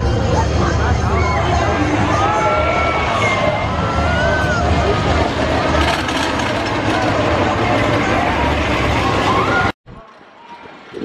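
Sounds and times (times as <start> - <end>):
roller coaster rumbling on track: 0.0 - 11.0
crowd shouting: 0.4 - 9.8.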